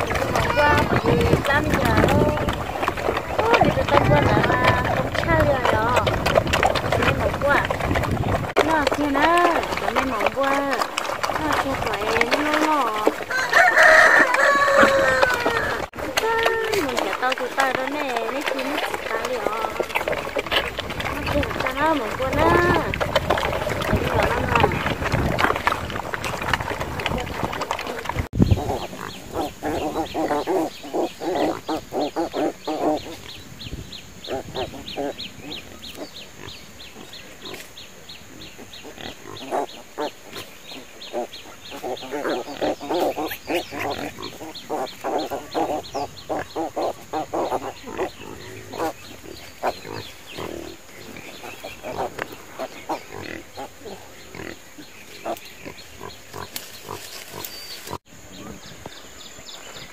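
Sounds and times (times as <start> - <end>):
pigs grunting: 0.0 - 33.4, 34.2 - 58.8.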